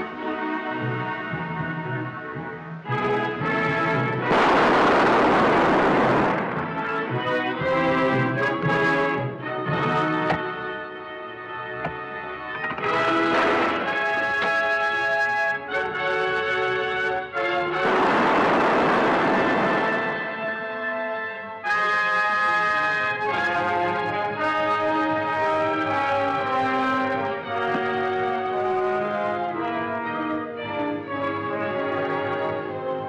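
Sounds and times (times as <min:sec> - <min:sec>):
orchestral music led by brass: 0:00.0 - 0:33.0
loud burst of noise: 0:04.3 - 0:07.0, 0:17.8 - 0:20.3.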